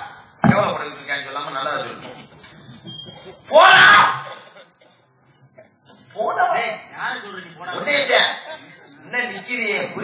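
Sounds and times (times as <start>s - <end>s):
crickets chirring: 0.0s - 10.0s
man shouting into a microphone: 3.5s - 4.3s.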